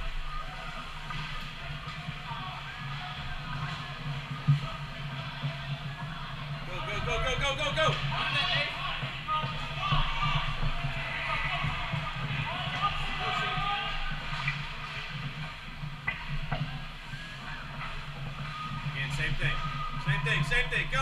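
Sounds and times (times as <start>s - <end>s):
echoing voices: 0.0s - 21.0s.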